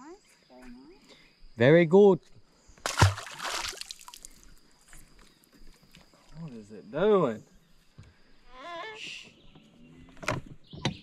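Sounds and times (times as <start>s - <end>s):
fish splashing into water: 2.8s - 4.5s
water sloshing: 2.8s - 4.6s.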